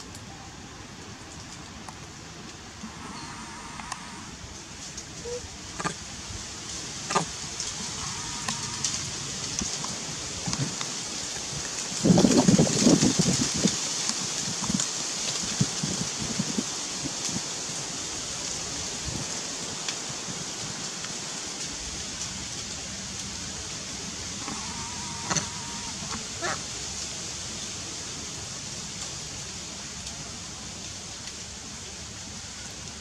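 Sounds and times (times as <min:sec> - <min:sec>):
outdoor background hiss: 0:00.0 - 0:33.0.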